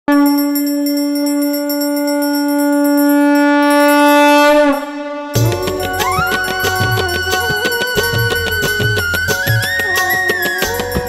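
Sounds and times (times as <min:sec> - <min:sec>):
conch shell long note: 0:00.1 - 0:11.0
small bell ringing rapidly: 0:00.2 - 0:04.2, 0:05.4 - 0:11.0.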